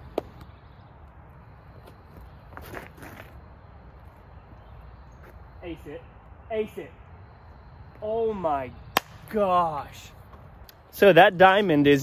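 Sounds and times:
footsteps on leafy dirt path: 0:01.8 - 0:03.4.

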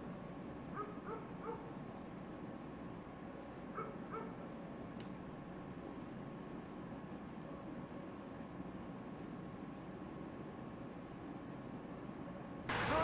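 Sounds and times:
dog barking: 0:00.7 - 0:01.7, 0:03.7 - 0:04.4.

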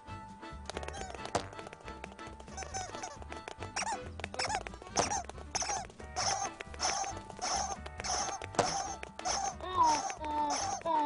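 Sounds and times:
cartoon birds chirping: 0:00.8 - 0:01.3, 0:02.4 - 0:11.0.

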